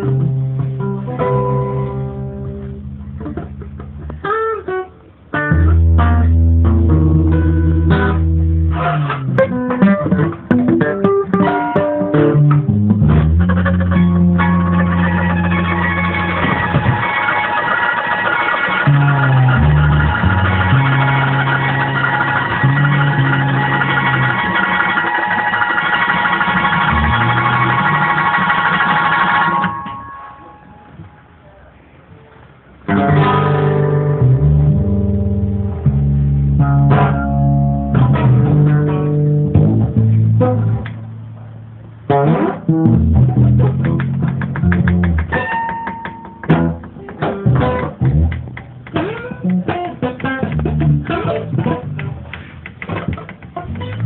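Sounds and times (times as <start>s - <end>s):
acoustic guitars playing: 0.0s - 31.4s, 32.8s - 54.0s.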